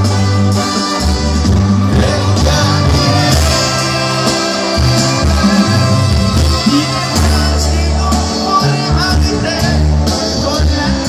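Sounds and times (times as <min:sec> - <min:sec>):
brass band playing live: 0:00.0 - 0:11.0
tuba bass notes: 0:00.0 - 0:11.0.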